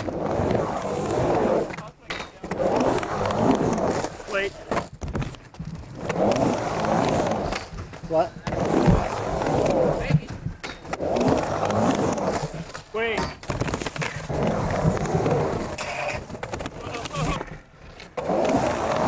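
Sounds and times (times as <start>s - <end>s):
skateboard wheels rolling on ramp: 0.0s - 19.0s.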